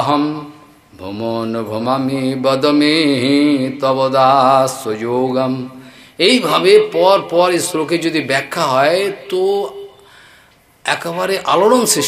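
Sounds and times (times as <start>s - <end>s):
man chanting: 0.0s - 10.0s, 10.8s - 12.0s.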